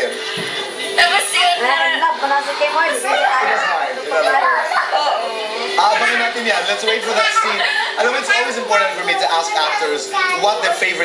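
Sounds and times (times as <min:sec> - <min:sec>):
woman talking through tv speaker: 0:01.0 - 0:05.8.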